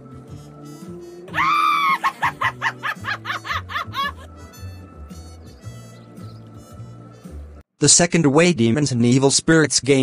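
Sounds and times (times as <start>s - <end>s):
background music with low bass: 0.0s - 10.0s
high-pitched villainous cackle: 1.4s - 4.3s.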